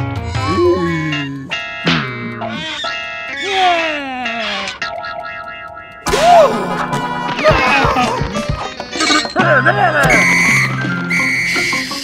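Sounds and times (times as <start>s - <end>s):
cartoon music: 0.2s - 12.0s.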